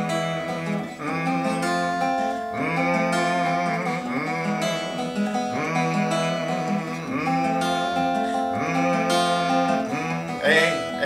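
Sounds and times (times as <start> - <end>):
fingerpicked acoustic guitar: 0.0 - 11.0
man humming: 0.0 - 11.0.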